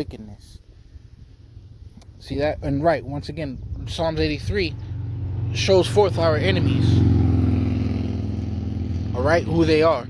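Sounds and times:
low engine rumble: 0.0s - 10.0s.

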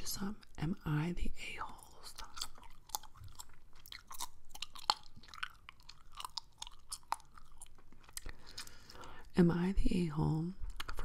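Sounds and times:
gum chewing mouth clicks: 1.8s - 9.2s.

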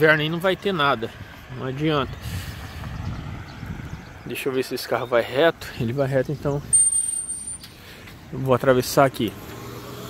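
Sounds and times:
car passing: 0.0s - 4.6s
wind on microphone: 2.1s - 4.3s.

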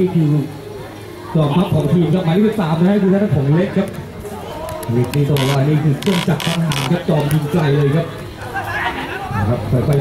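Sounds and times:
background voices chattering: 0.0s - 10.0s.

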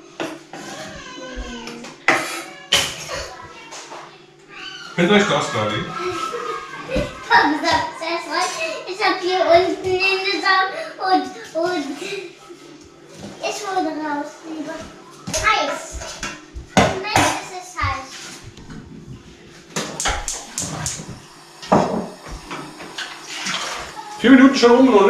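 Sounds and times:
child chattering: 0.7s - 3.7s, 5.9s - 12.3s, 16.9s - 18.1s, 23.8s - 24.2s.

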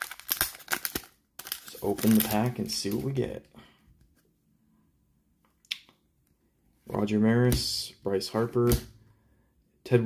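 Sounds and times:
cards handled in hands: 0.0s - 3.3s.

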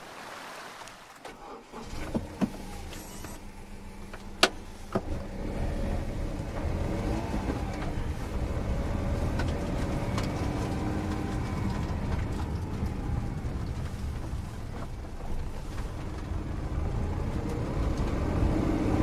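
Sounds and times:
car engine accelerating: 1.4s - 19.0s.

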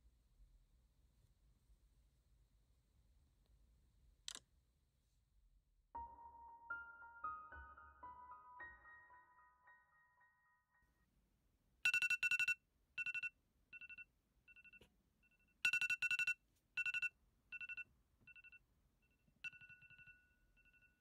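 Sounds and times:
phone alarm rapid beeps: 11.9s - 21.0s.

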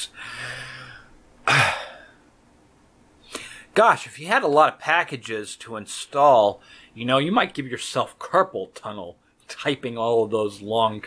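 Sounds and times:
man clearing his throat: 1.4s - 2.2s.

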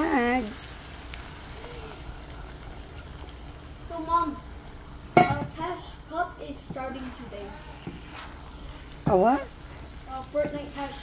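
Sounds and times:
eggs sizzling in a pan: 0.0s - 11.0s.

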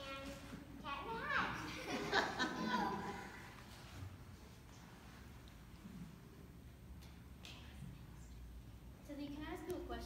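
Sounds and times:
child speaking: 0.0s - 1.8s.

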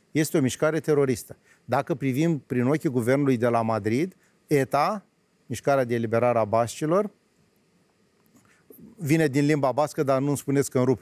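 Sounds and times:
man speaking: 0.1s - 7.2s, 8.8s - 11.0s.

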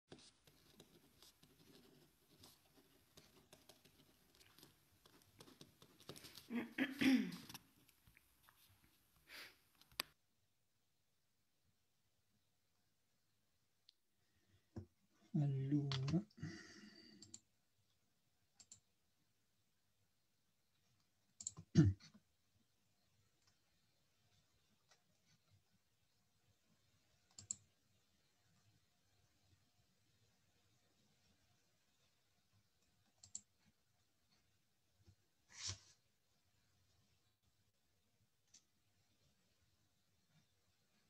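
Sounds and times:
soft clicks and rustles: 0.1s - 6.5s, 7.4s - 10.2s.

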